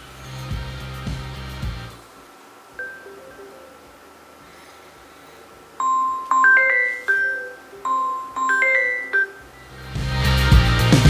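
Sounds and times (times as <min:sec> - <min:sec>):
phone ringtone mallet melody: 0:02.8 - 0:03.9, 0:05.8 - 0:09.7
music track: 0:02.8 - 0:04.2, 0:05.8 - 0:11.0.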